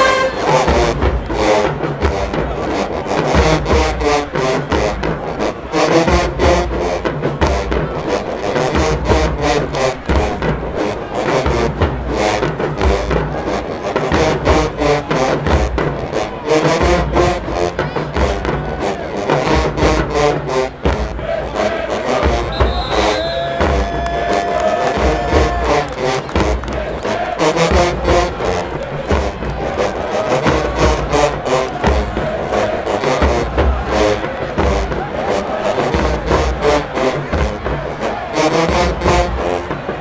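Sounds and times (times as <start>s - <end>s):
marching band brass: 0.0s - 40.0s
steady drum beat: 0.0s - 40.0s.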